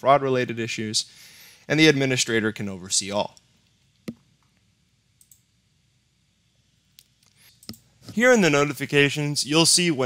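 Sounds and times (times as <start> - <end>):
computer mouse clicks: 5.2 - 5.4, 7.0 - 7.9.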